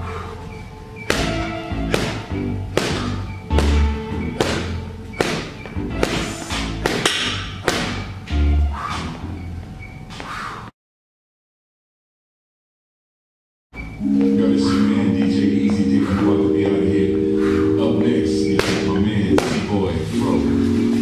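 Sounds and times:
punches on heavy punching bag: 0:01.1 - 0:08.1
rap music with heavy bass: 0:14.2 - 0:21.0.

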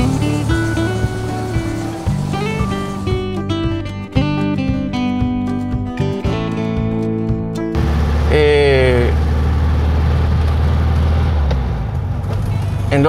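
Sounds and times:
road noise: 0:00.0 - 0:03.3, 0:07.8 - 0:13.0
car engine running: 0:00.0 - 0:03.7, 0:07.8 - 0:13.0
acoustic guitar music: 0:00.0 - 0:12.8.

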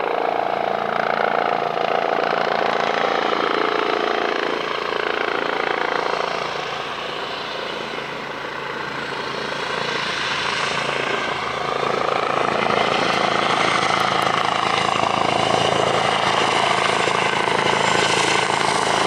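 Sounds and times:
helicopter flying overhead: 0:00.0 - 0:19.0.

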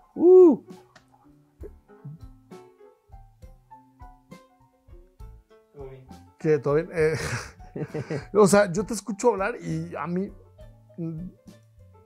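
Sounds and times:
man hooting: 0:00.0 - 0:00.7
faint background music: 0:00.0 - 0:12.0.

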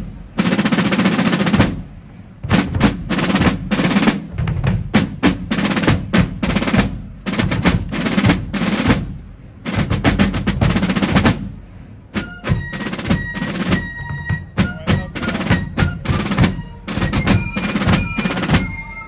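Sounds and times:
snare drum rolls: 0:00.0 - 0:19.0.

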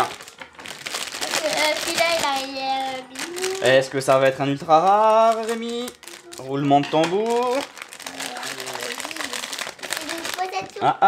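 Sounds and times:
foil packet crinkling: 0:00.0 - 0:10.8.

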